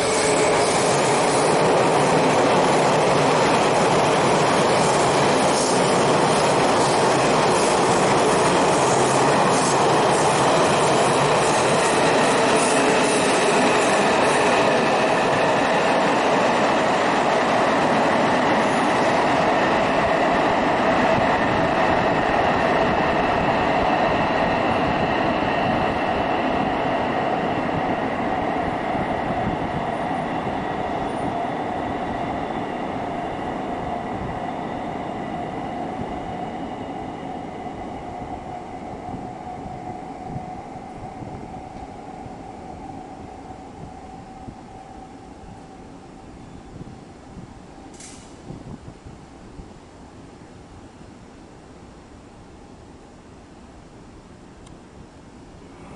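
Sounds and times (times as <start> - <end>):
train wheels rumbling on rail: 0.0 - 49.2.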